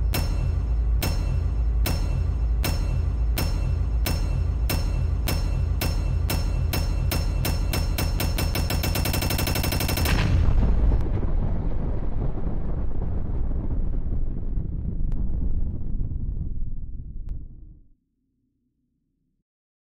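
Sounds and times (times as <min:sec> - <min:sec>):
rapid gunshots rattling: 0:02.6 - 0:10.6
loud explosion with rumble: 0:07.8 - 0:17.8.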